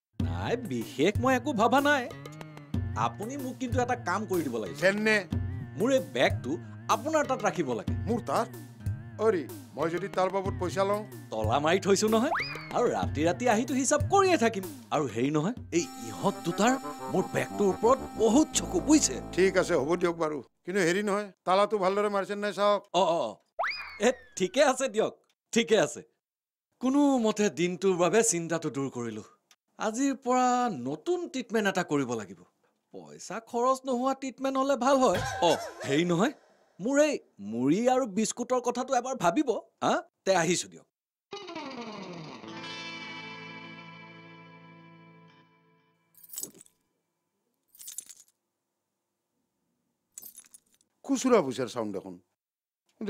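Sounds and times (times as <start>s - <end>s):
whistle tone sliding up and down: 12.3s - 12.8s, 23.6s - 24.5s
man's voice: 15.8s - 23.4s, 35.1s - 37.8s
metal keyring jangling: 46.2s - 46.8s, 47.7s - 48.4s, 50.2s - 50.9s.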